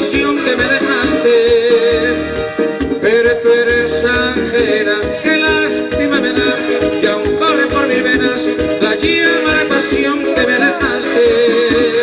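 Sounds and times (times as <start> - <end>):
keyboards and electric guitar lead: 0.0 - 12.0
latin band music: 0.0 - 12.0
steady drum beat: 0.0 - 12.0.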